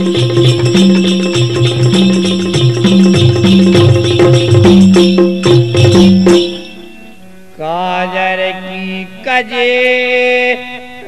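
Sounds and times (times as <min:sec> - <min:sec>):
man singing a long held note: 0:07.6 - 0:11.0.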